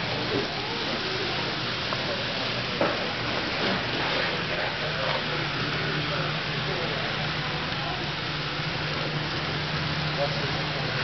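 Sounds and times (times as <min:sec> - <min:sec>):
hiss-like room noise: 0:00.0 - 0:11.0.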